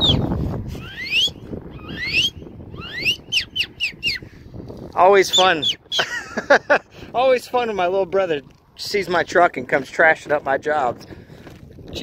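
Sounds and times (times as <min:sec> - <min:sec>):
person whistling rising notes: 0:00.0 - 0:04.2
wind rush on microphone: 0:00.0 - 0:12.0.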